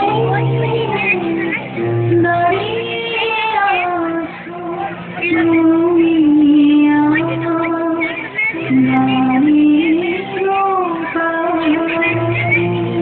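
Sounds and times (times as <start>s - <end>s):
high singing voice: 0.0s - 13.0s.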